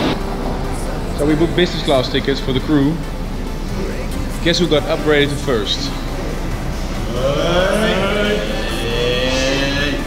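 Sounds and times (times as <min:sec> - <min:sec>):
trance music: 0:00.0 - 0:10.0
men cheering: 0:07.0 - 0:10.0.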